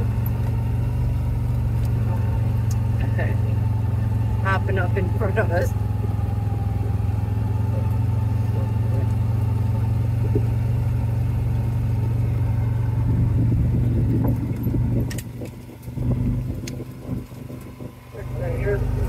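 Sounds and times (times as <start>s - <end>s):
small vehicle engine humming: 0.0s - 19.0s.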